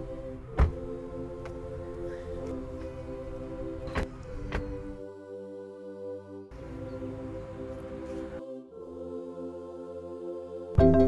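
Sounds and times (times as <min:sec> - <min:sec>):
music with long held notes: 0:00.0 - 0:11.0.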